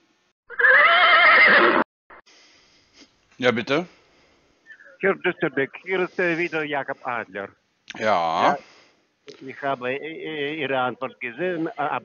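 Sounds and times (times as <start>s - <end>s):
horse whinny: 0.5s - 1.8s
faint phone line hiss: 4.7s - 7.5s, 9.5s - 12.0s.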